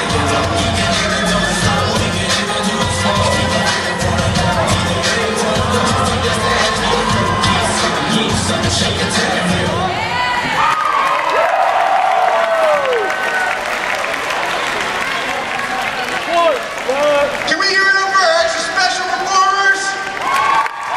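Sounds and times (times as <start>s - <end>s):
dance music over loudspeakers: 0.0s - 10.6s, 15.6s - 20.9s
crowd cheering and whooping: 0.0s - 17.0s, 20.0s - 20.9s.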